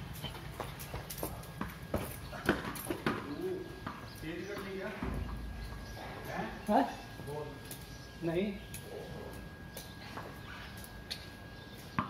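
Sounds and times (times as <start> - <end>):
ball bouncing on stone tiles: 0.1 - 5.8.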